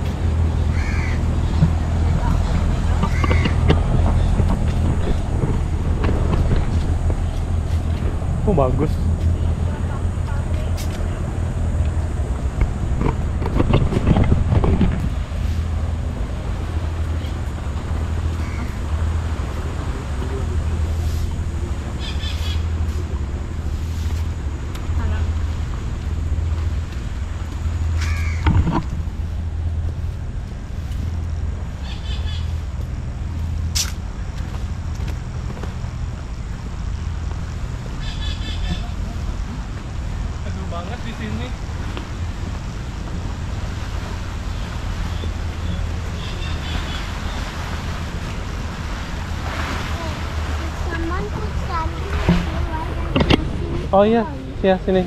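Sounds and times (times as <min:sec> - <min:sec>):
steady low rumble: 0:00.0 - 0:55.0.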